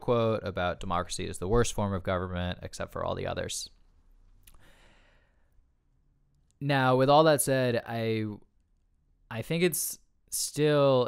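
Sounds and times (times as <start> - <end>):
man breathing close to microphone: 4.5 - 5.6.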